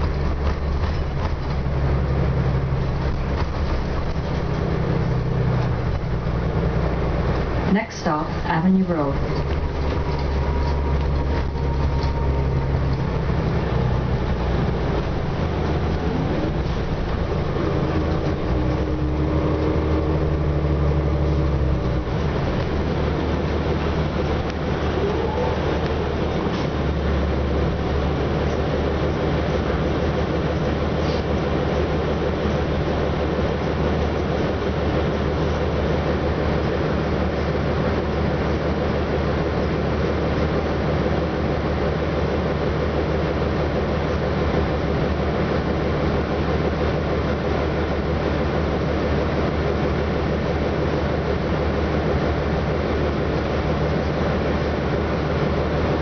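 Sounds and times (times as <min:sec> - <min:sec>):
bus engine droning: 0:00.0 - 0:56.0
rising engine whine: 0:00.0 - 0:56.0.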